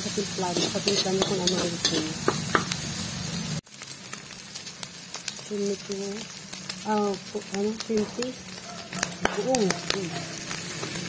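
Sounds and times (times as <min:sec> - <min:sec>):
meat sizzling in a wok: 0:00.0 - 0:11.0
metal spatula scraping wok: 0:00.1 - 0:02.8.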